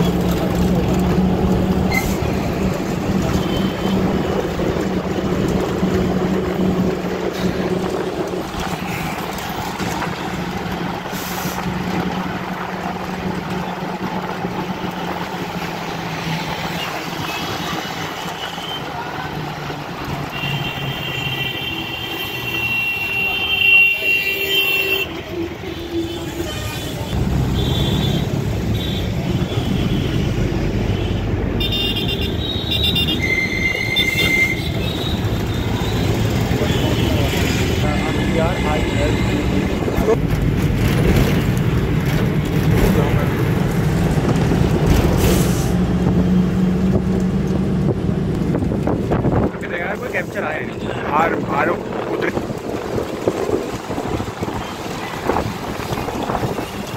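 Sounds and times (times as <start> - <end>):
bus engine and road noise: 0.0 - 56.9
vehicle horns tooting: 20.2 - 39.6.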